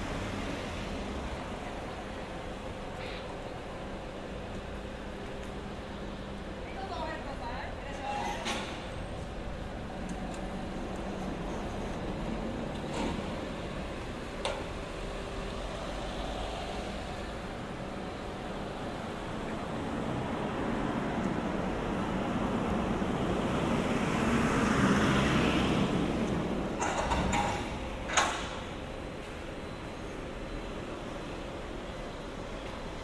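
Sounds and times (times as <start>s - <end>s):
street traffic: 0.0s - 33.0s
vehicle passing: 19.8s - 26.7s.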